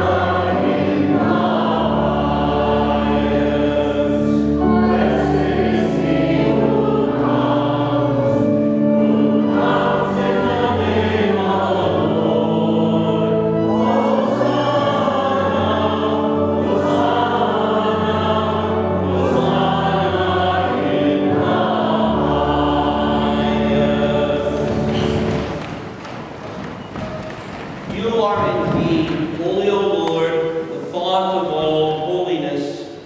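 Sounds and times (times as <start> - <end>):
low steady accompaniment: 0.0 - 32.4
church choir singing: 0.0 - 33.0.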